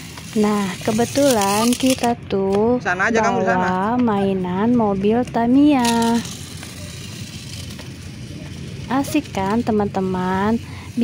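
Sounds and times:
toy car motor whirring: 0.0 - 2.2, 5.4 - 11.0.

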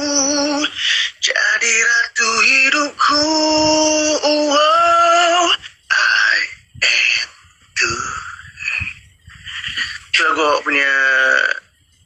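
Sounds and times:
person's held vocal tone: 0.0 - 8.8.

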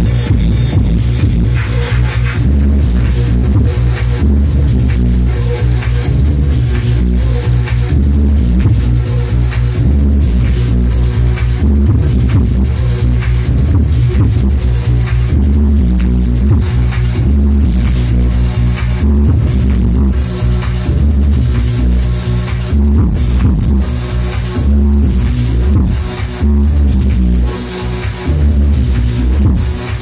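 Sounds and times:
electronic dance music: 0.0 - 30.0
heavy bass beat: 0.0 - 30.0.

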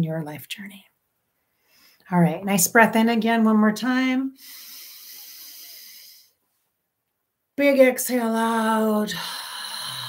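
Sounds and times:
person breathing in through nose: 1.5 - 2.1, 4.4 - 6.4.

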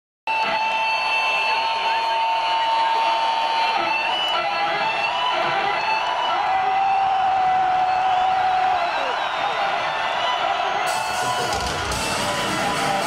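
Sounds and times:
crowd noise: 0.3 - 13.0
music over arena loudspeakers: 0.3 - 13.0.

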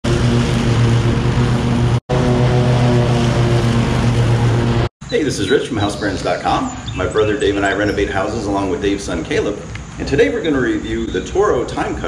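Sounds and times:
riding mower engine running: 0.0 - 12.0.

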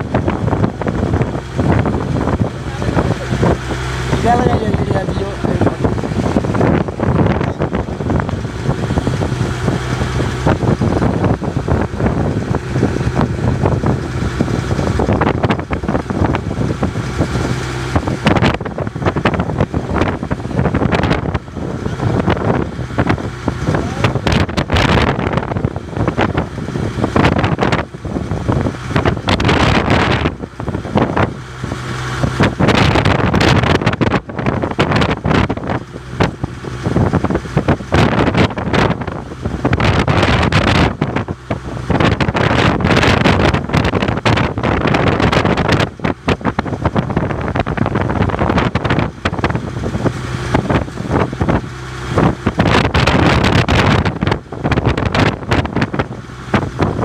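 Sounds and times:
boat engine running: 0.0 - 57.0
choppy water washing: 0.0 - 57.0
wind buffeting microphone: 0.0 - 57.0.

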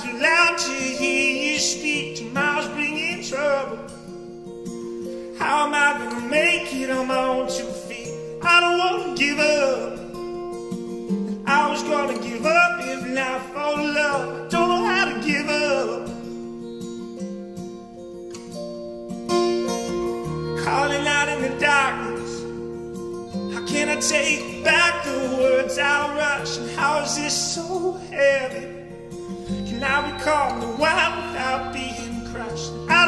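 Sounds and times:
man singing folk song: 0.0 - 16.8, 19.6 - 33.0
strummed acoustic guitar: 0.0 - 33.0.

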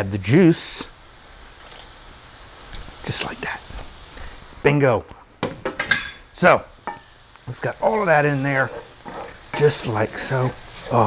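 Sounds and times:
mushrooms sizzling in a skillet: 0.0 - 11.0.

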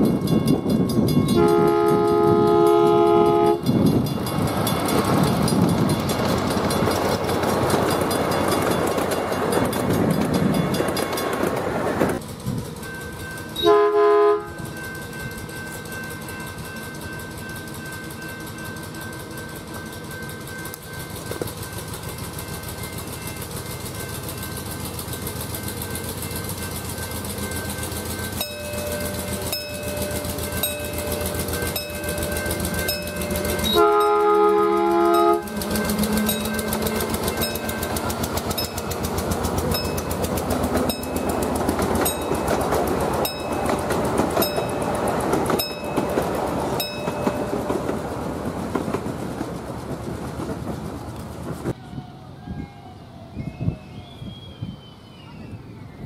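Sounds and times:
miniature train wheels clicking: 0.0 - 51.8
multi-tone train horn: 1.3 - 3.9, 13.6 - 14.7, 33.6 - 36.6.

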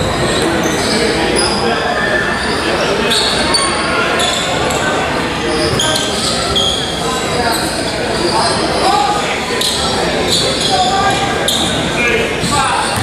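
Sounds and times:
gym crowd voices: 0.0 - 13.0
sneakers squeaking on hardwood: 12.4 - 13.0.

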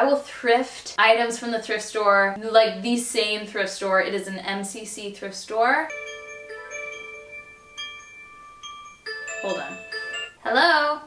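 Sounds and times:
phone ringtone chiming: 5.9 - 10.4.

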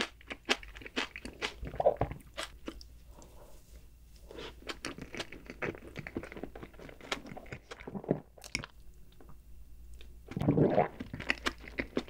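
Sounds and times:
crunching and chewing food: 0.0 - 3.4, 4.2 - 9.3, 10.0 - 12.0.

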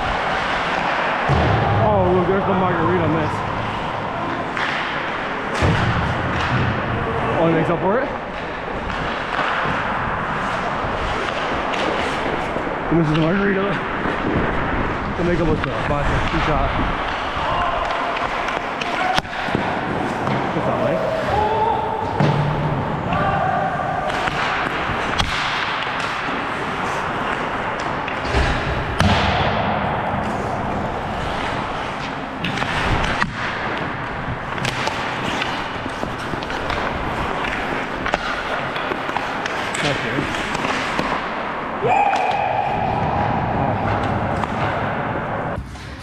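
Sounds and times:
players shouting: 0.0 - 5.6, 17.0 - 24.8, 41.7 - 45.5
hockey sticks and puck knocking: 0.0 - 46.0
skate blades scraping ice: 8.4 - 21.7, 24.0 - 29.0, 30.2 - 42.3.

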